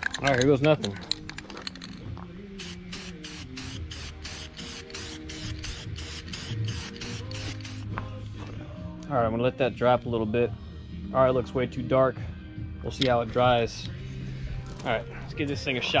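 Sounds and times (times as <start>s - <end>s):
background music: 0.0s - 16.0s
spray paint can hissing: 2.6s - 7.9s.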